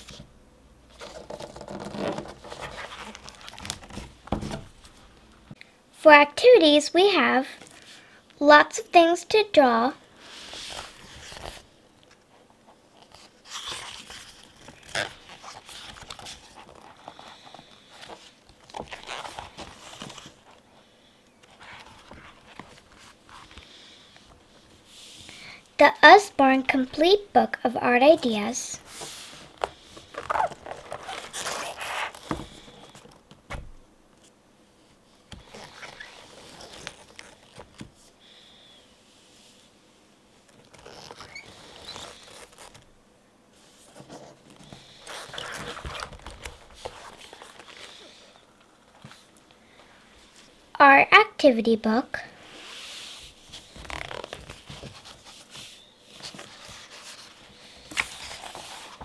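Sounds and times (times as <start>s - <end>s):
paper pages turning: 0.9s - 5.1s, 10.3s - 12.3s, 12.9s - 20.6s, 21.4s - 24.4s, 28.8s - 33.6s, 35.3s - 38.1s, 40.5s - 42.9s, 43.9s - 48.2s, 52.6s - 59.0s
page flapping down: 1.0s - 4.8s, 44.8s - 48.0s, 53.6s - 59.0s.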